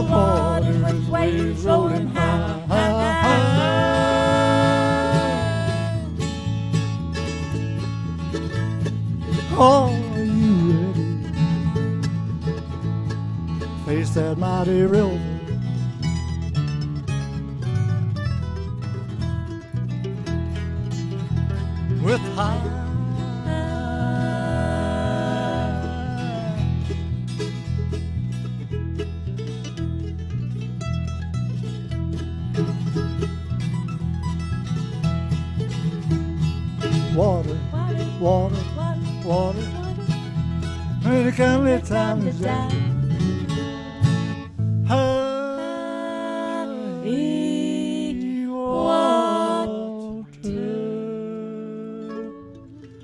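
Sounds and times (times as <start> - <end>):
person singing: 0.0 - 6.2, 9.5 - 11.3, 22.0 - 26.8, 37.1 - 40.0, 41.0 - 43.0, 44.9 - 53.0
walking bass line: 0.0 - 45.4
acoustic guitar: 0.0 - 53.0
mandolin: 0.0 - 53.0.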